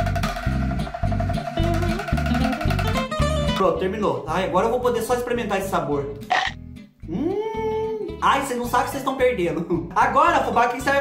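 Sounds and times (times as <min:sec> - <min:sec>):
background music with low beat: 0:00.0 - 0:09.0
man humming mmm: 0:01.6 - 0:03.0, 0:06.3 - 0:08.2.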